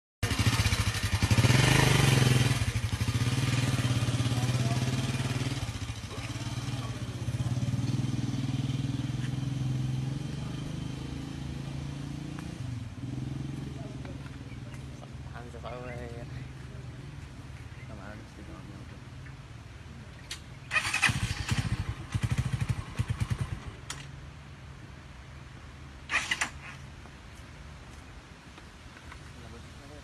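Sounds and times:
small engine droning: 0.2 - 18.8.

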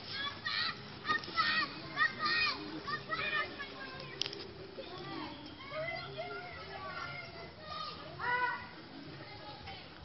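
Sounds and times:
people talking and calling: 0.0 - 10.0.

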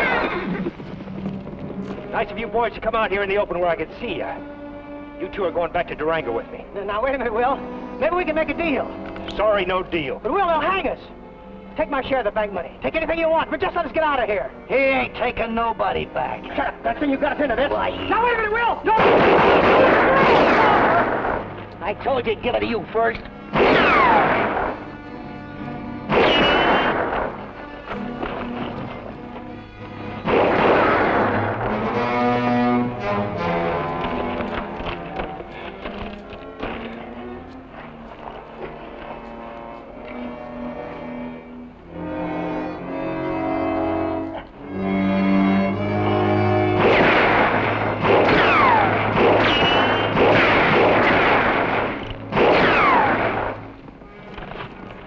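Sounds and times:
dramatic orchestral score: 0.0 - 55.0
revolver gunshots: 19.0 - 21.6, 23.5 - 25.0, 26.1 - 27.7, 30.2 - 32.5, 46.7 - 53.7
ricochet whine: 23.5 - 25.0, 25.9 - 37.0, 46.6 - 54.9.

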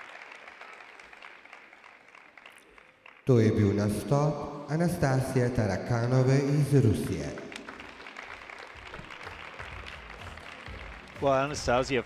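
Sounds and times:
light applause: 0.0 - 3.6, 6.5 - 12.0.

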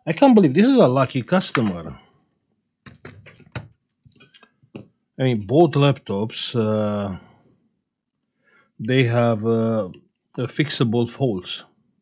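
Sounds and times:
laptop parts knocking and clattering: 2.8 - 4.9.

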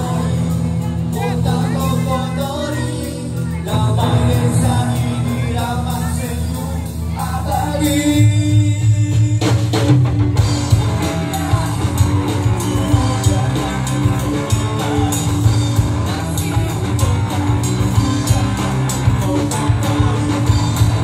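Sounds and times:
bass guitar: 0.0 - 21.0
drum kit beat: 0.0 - 21.0
electric guitar: 0.0 - 21.0.

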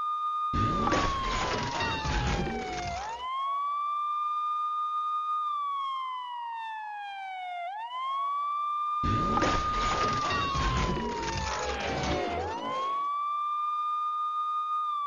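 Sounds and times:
emergency siren wailing: 0.0 - 15.0.

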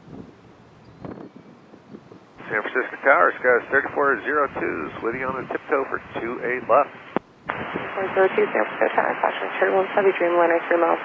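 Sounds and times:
wind buffeting microphone: 0.0 - 9.0.

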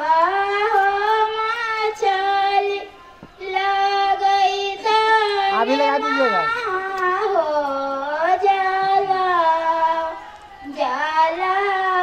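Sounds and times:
person singing in long held notes: 0.0 - 12.0.

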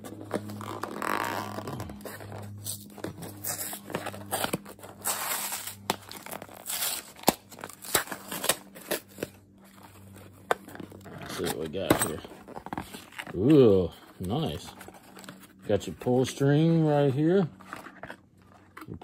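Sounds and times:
cardboard tearing: 0.0 - 16.2
cardboard scraping and rustling: 0.0 - 19.0.

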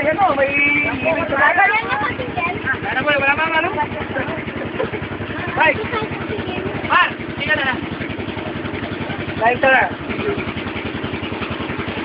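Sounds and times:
boat engine puttering: 0.0 - 12.0
voices calling out: 0.0 - 12.0.

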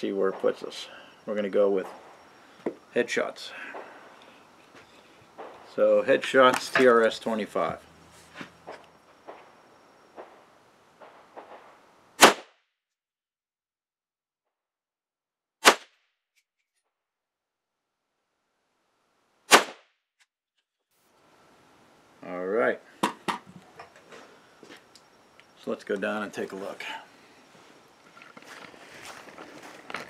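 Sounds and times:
rifle shot: 11.0 - 12.5, 15.6 - 15.9, 19.5 - 19.8.

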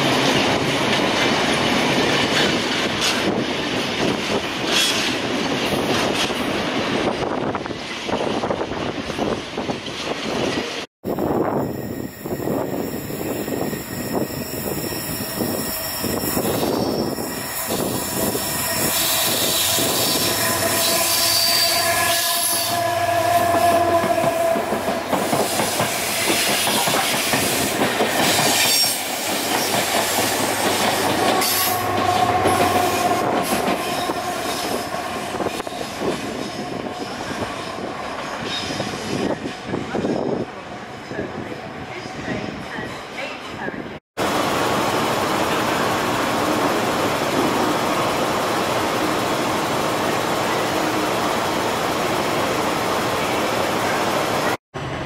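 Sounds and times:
wheel squeal: 11.7 - 22.7.

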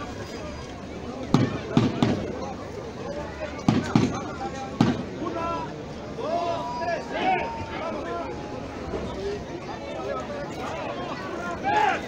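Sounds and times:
crowd murmur: 0.0 - 12.0
loud firecracker bangs: 1.3 - 2.4, 3.7 - 5.2.

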